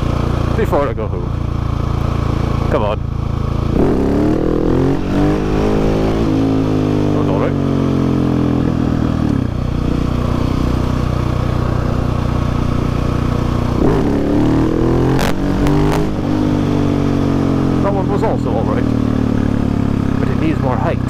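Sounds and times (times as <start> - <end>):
motorcycle engine running: 0.0 - 21.0.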